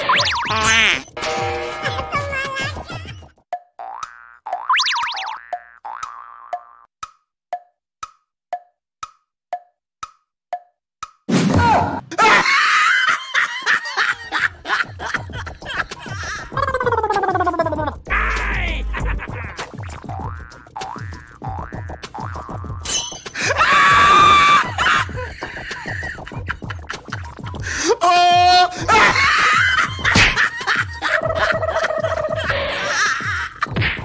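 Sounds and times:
wood-block ticks: 3.2s - 11.3s, 19.6s - 22.8s, 25.4s - 27.7s
cartoon falling boings: 3.5s - 6.9s
music with thumping beat: 17.7s - 22.8s, 25.0s - 27.7s, 33.2s - 34.0s.

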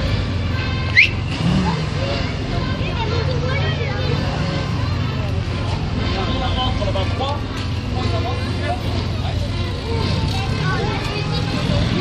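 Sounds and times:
jeep engines idling: 0.0s - 12.0s
people talking: 1.4s - 12.0s.

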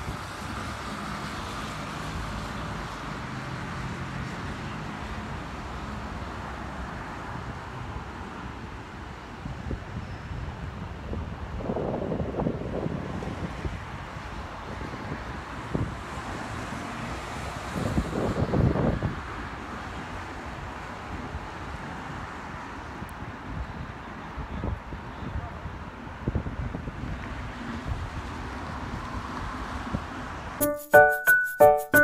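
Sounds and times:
outdoor background noise: 0.0s - 30.6s
wind buffeting microphone: 9.6s - 16.3s, 17.7s - 19.3s
music with pitched notes: 30.6s - 32.0s.

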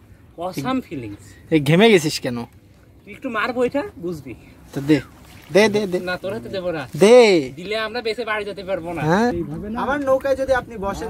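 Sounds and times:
people talking: 3.1s - 11.0s.

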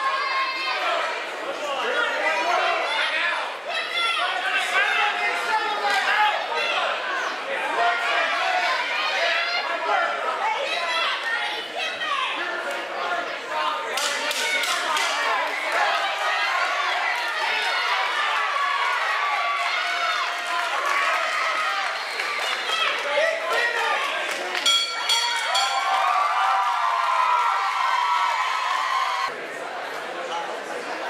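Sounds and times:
crowd shouting and cheering: 0.0s - 31.0s.

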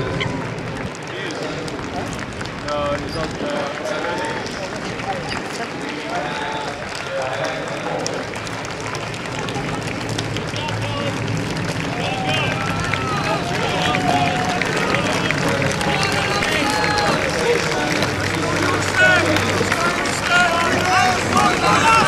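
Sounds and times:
crowd shouting and cheering: 0.0s - 22.0s.

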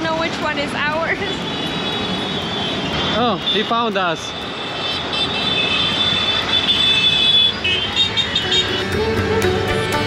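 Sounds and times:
motorbike engines: 0.0s - 10.0s.

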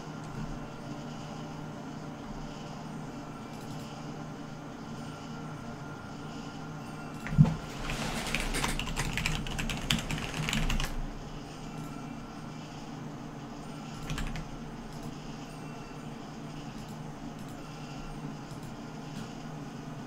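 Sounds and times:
steady low hum: 0.0s - 20.0s
typing on computer keyboard: 7.3s - 11.0s, 14.0s - 14.5s.

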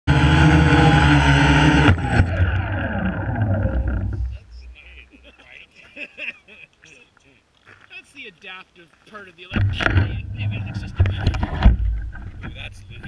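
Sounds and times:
drone hitting the ground: 0.1s - 4.8s, 9.6s - 13.0s
drone motors whining: 0.1s - 5.1s, 9.6s - 13.0s.

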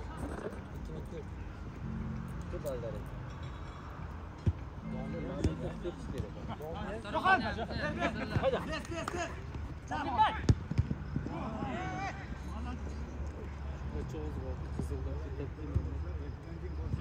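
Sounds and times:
players shouting: 11.2s - 12.7s.

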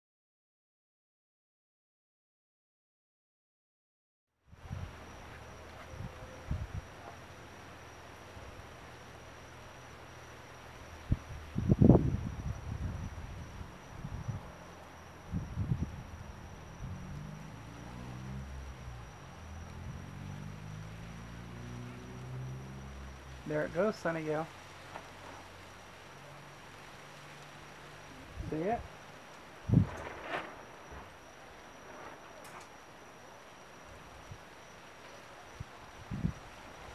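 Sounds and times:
faint hiss: 4.5s - 36.9s
high insect trill: 4.5s - 36.9s
low wavering drone: 4.6s - 36.9s.

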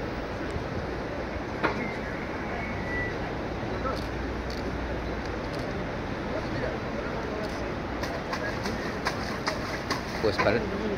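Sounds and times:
outdoor background noise: 0.0s - 10.9s.

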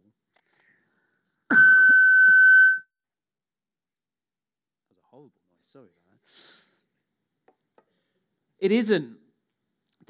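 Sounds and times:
microphone feedback squeal: 1.5s - 2.9s.

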